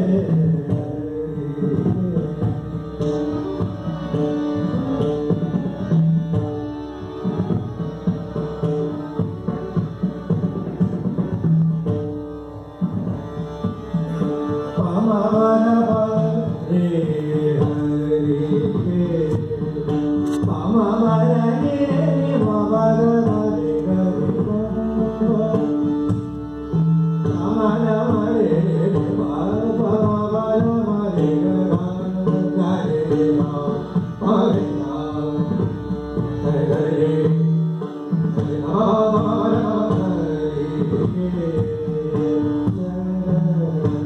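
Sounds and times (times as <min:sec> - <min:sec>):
held accompanying notes: 0:00.0 - 0:44.0
tabla: 0:00.0 - 0:44.0.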